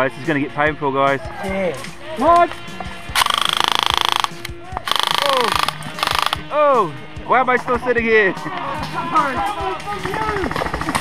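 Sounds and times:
airsoft rifle automatic fire: 0:03.2 - 0:06.4.

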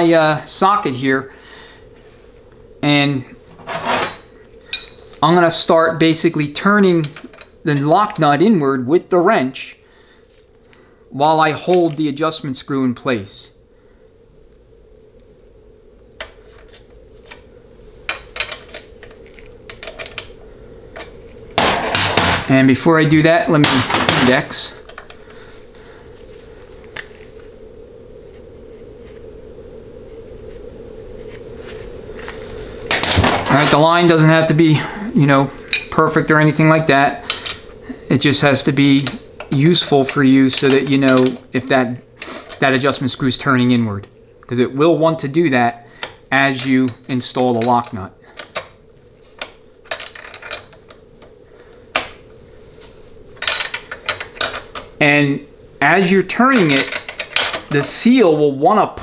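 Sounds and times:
low workshop hum: 0:00.0 - 0:59.0
metal tools clinking: 0:03.6 - 0:05.1, 0:49.9 - 0:50.8, 0:53.4 - 0:54.9, 0:56.5 - 0:57.9.

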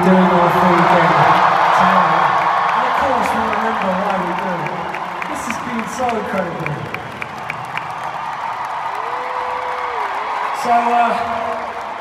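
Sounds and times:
crowd cheering and applauding: 0:00.0 - 0:12.0.

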